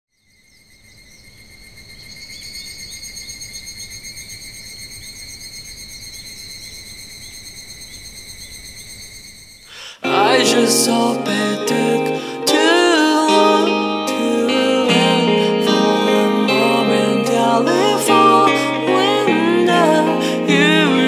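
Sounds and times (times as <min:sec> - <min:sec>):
insects trilling: 0:00.1 - 0:13.3.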